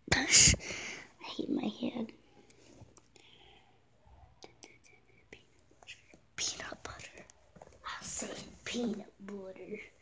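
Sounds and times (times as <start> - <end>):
faint breathy whisper: 3.2 - 8.4.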